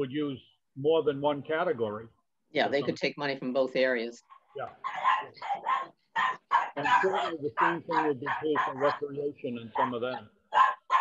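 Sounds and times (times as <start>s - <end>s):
man talking: 0.0s - 2.2s, 6.8s - 10.4s
animal yapping: 4.7s - 9.0s, 9.8s - 11.0s.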